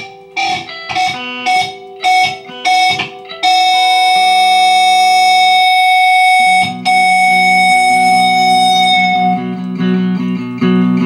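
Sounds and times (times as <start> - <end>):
guitar band music: 0.0 - 11.0.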